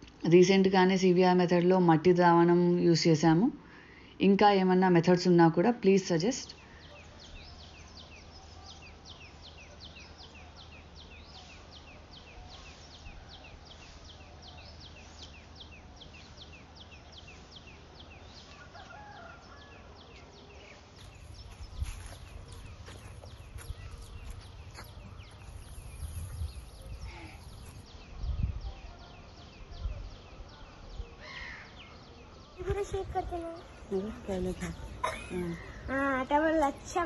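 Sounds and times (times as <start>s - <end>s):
bird chirping: 6.8s - 37.0s.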